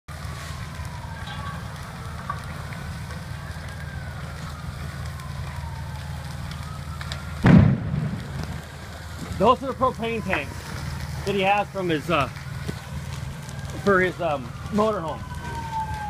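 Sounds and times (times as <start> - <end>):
faint sirens wailing: 0.1 - 16.0
fire roaring: 0.1 - 16.0
loud bang: 7.4 - 8.4.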